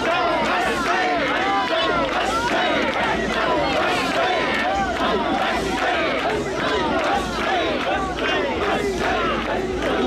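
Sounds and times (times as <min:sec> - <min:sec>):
crowd shouting together: 0:00.0 - 0:10.0.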